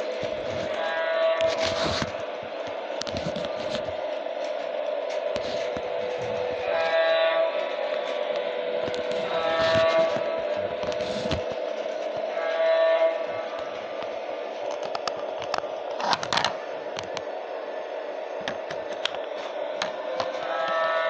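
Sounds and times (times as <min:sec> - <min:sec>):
electronic train horn: 0:00.0 - 0:21.0
toy train motor whirring: 0:00.0 - 0:21.0.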